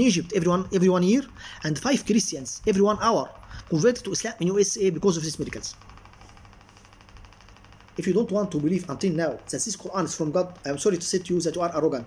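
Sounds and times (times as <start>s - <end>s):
faint room hum and hiss: 0.0s - 12.0s.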